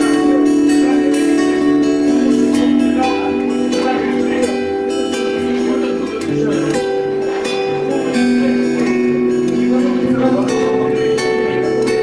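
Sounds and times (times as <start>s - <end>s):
guitar plucked melody: 0.0s - 12.0s.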